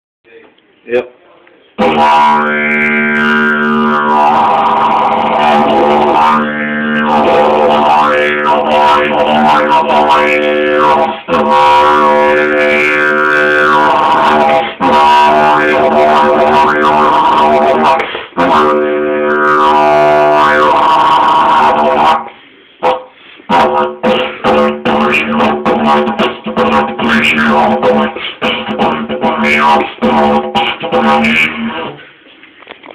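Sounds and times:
didgeridoo drone: 1.8 - 32.1.

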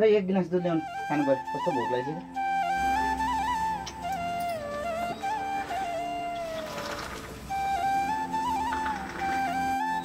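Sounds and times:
flute melody: 0.4 - 10.0.

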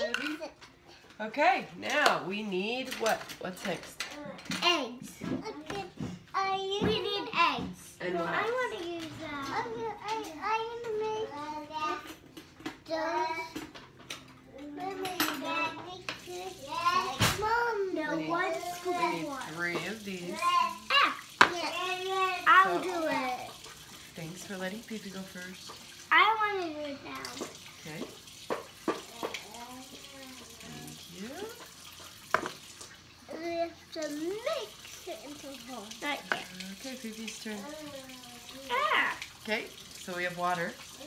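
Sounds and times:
child speaking: 0.0 - 0.6, 4.1 - 7.8, 8.5 - 12.2, 12.8 - 13.7, 14.5 - 19.5, 20.3 - 23.5, 26.1 - 27.5, 29.1 - 30.9, 33.3 - 36.0, 37.6 - 39.2
utensils clinking on dishes: 0.0 - 1.2, 1.8 - 5.5, 8.0 - 17.5
faucet running into sink: 6.4 - 41.0.

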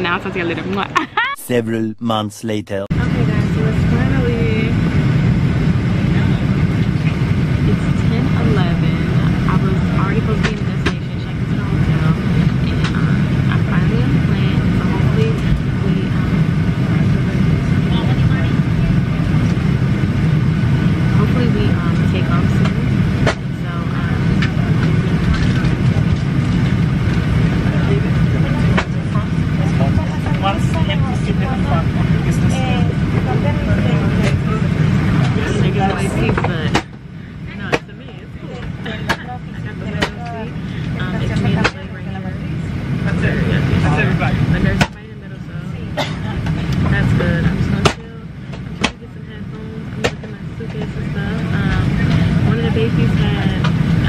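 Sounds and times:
faint voices: 0.0 - 4.8, 5.4 - 54.0
jet engines droning: 0.0 - 54.0.

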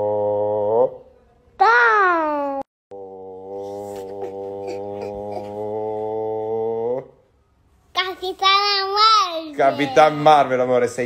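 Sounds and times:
child's high voice: 1.6 - 2.7, 8.0 - 10.2.

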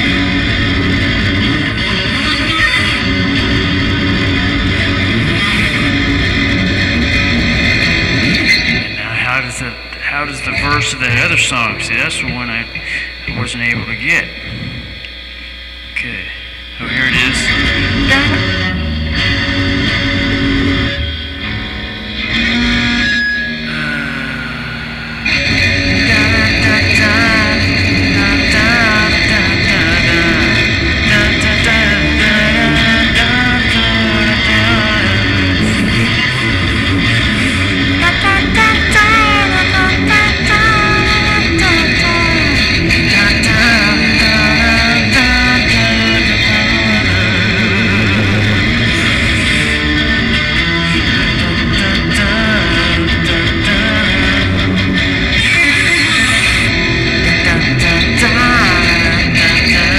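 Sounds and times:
electric guitar and bass music: 0.0 - 59.9.

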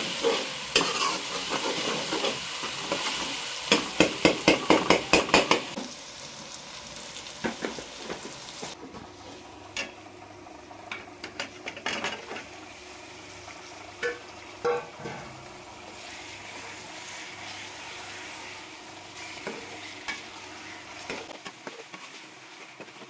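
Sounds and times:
chicken sizzling in a pot: 0.0 - 23.0.

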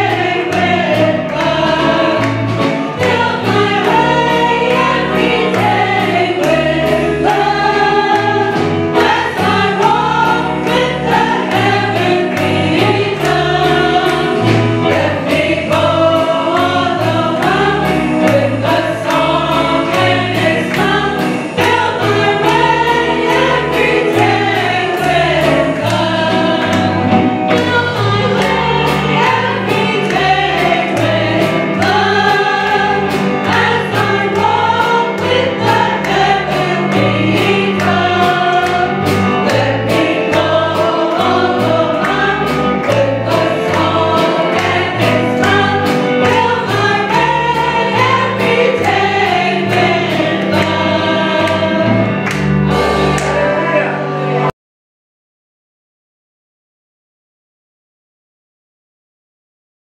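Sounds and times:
women singing gospel: 0.0 - 53.0.

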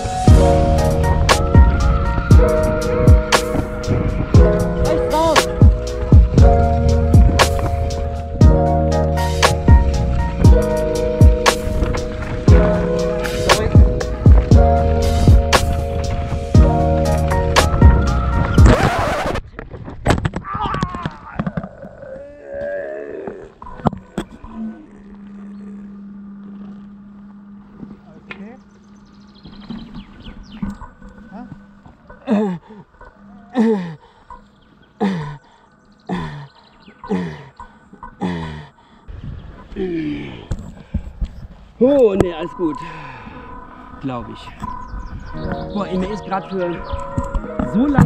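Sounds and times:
background music: 0.0 - 19.2, 44.7 - 48.0
person groaning and gasping: 21.9 - 23.6, 32.2 - 32.9, 33.5 - 34.0, 35.0 - 35.5, 37.1 - 37.5.

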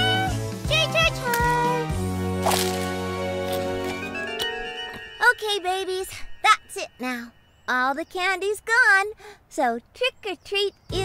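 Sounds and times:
background music: 0.0 - 8.8.

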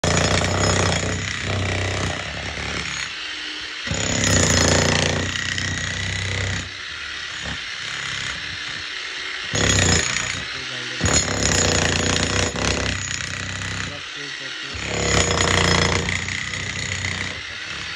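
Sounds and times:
demolition hammer pounding concrete: 0.0 - 3.2, 3.9 - 8.9, 9.5 - 14.1, 14.7 - 17.9.

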